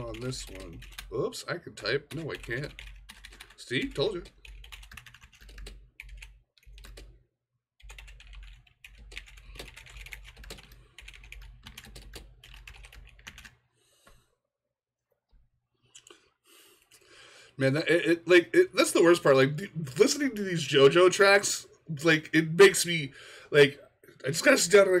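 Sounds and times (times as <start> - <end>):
typing on computer keyboard: 0.0 - 1.1, 2.0 - 7.1, 7.8 - 13.6.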